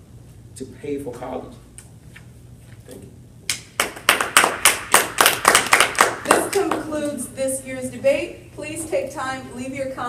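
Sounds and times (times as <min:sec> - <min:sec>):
small group applauding: 0:03.5 - 0:07.1.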